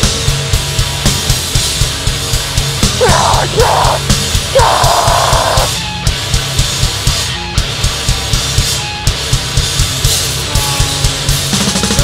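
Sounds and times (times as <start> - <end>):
metal band playing live: 0.0 - 12.0
harsh screamed vocal: 3.0 - 5.8.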